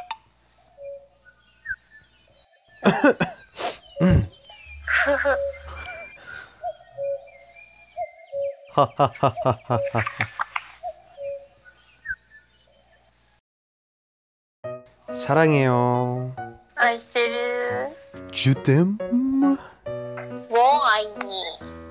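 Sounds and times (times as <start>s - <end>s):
chuckles: 2.8s - 6.6s, 8.7s - 10.6s
laugh-like pulses: 2.8s - 6.6s, 8.7s - 10.6s
voices making hm sounds: 2.8s - 7.2s, 8.8s - 10.5s, 18.6s - 19.7s
light background music: 14.7s - 21.9s.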